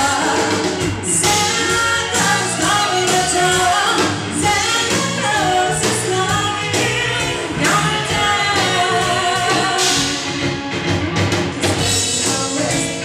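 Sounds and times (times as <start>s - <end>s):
woman singing lead: 0.0s - 10.4s, 11.8s - 13.0s
pop-rock band playing: 0.0s - 13.0s.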